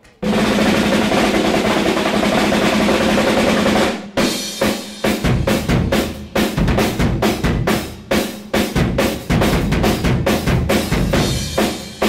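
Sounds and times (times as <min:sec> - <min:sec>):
snare drum roll: 0:00.0 - 0:12.0.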